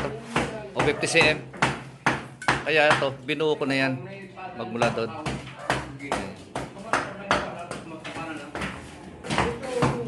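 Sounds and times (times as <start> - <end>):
sharp knocks and taps: 4.8 - 10.0.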